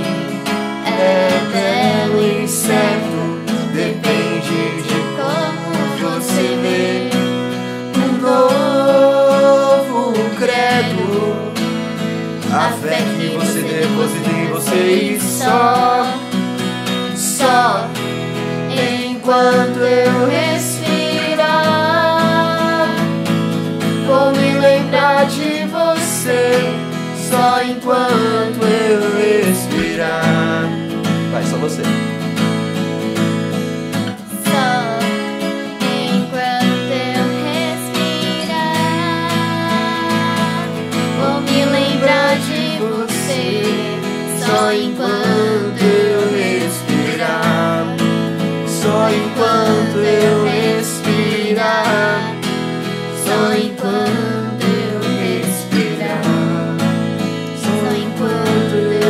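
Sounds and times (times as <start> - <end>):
acoustic guitar strummed: 0.0 - 59.0
girl singing: 0.8 - 7.3, 7.9 - 11.4, 12.4 - 16.3, 17.1 - 18.0, 18.7 - 23.2, 24.0 - 30.8, 34.1 - 48.0, 48.7 - 52.4, 53.2 - 56.8, 57.6 - 59.0.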